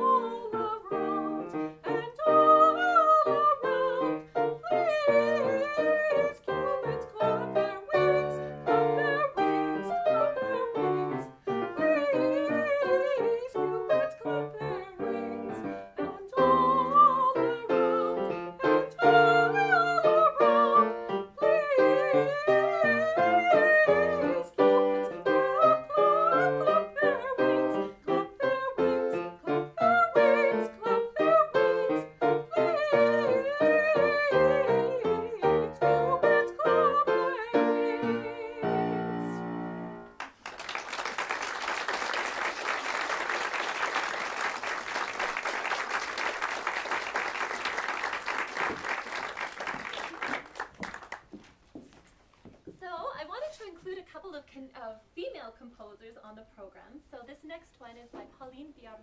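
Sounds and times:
soprano singing with vibrato: 0.0 - 39.8
grand piano: 0.0 - 51.3.

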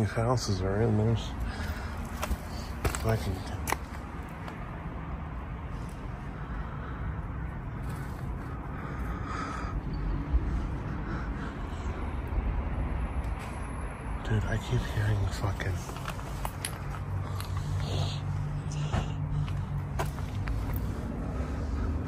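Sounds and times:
distant traffic rumble: 0.0 - 22.0
footsteps on littered ground: 2.1 - 4.0.

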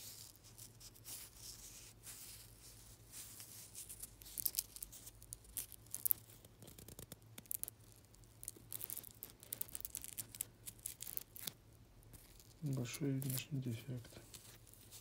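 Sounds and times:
velcro strap crackling: 0.0 - 15.0.

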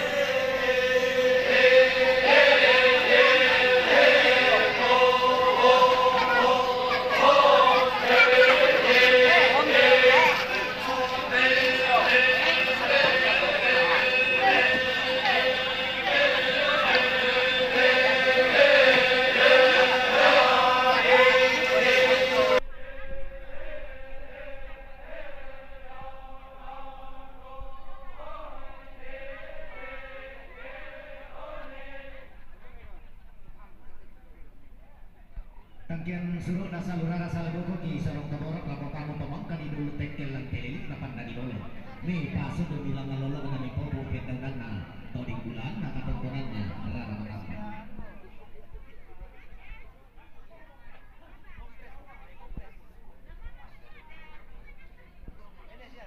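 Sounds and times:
held drone note: 0.0 - 28.6
voices chanting: 0.0 - 33.1.

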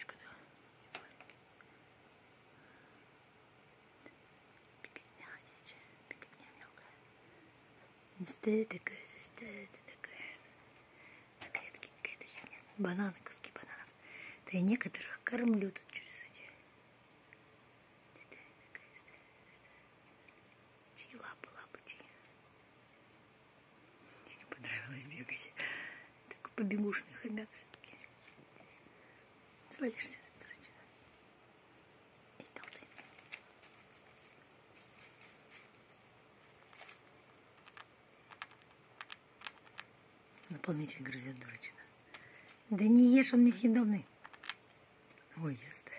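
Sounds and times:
soft murmured voice: 4.0 - 7.0
hamster gnawing: 32.5 - 40.5, 44.2 - 44.7.

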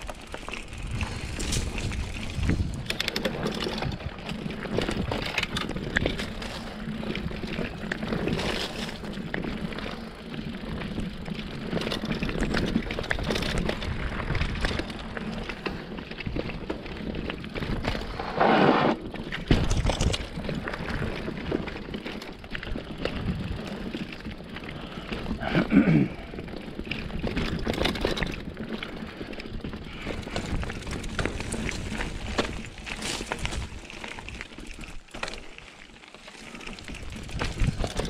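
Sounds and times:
bike chain and frame rattling: 0.0 - 18.3, 19.0 - 38.0
bike tyres rumbling over dirt: 0.0 - 38.0.

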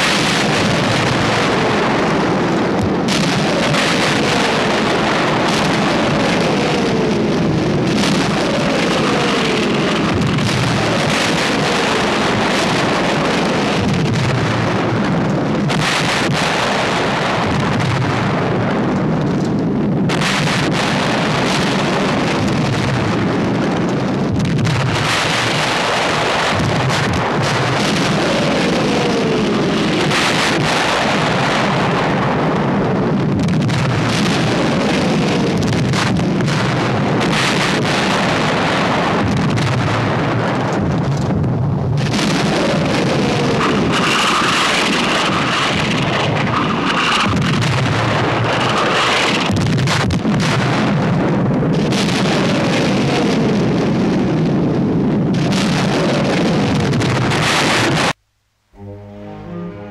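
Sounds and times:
shell explosions rumbling: 0.0 - 58.3.

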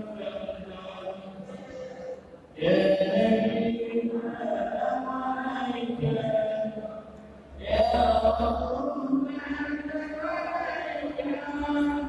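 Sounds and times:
men chanting: 0.0 - 12.0.

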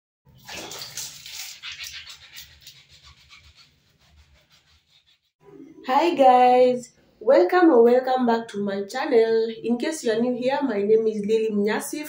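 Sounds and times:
water splashing in plastic basin: 0.3 - 2.8.

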